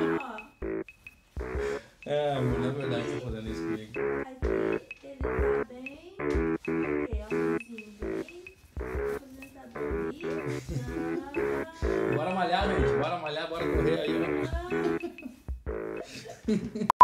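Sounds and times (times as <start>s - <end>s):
upbeat music with punchy chords: 0.0s - 9.2s, 9.8s - 16.1s
kick drum thumps: 1.4s - 1.8s, 2.5s - 9.2s, 13.8s - 15.8s.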